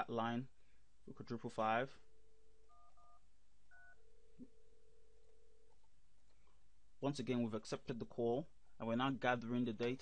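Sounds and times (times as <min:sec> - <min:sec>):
steady dial tone: 0:02.6 - 0:05.9
phone ringing tone: 0:02.7 - 0:04.4.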